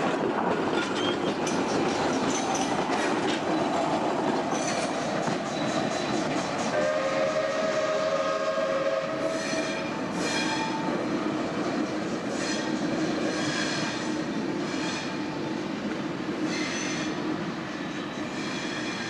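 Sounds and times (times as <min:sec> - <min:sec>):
train wheels clicking over rail joints: 0:00.0 - 0:06.8
train rumble: 0:00.0 - 0:19.0.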